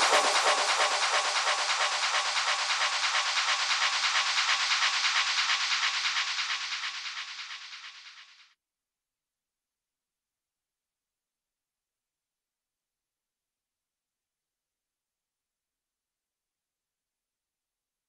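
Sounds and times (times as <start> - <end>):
hissing filtered noise with pulse: 0.0 - 8.4.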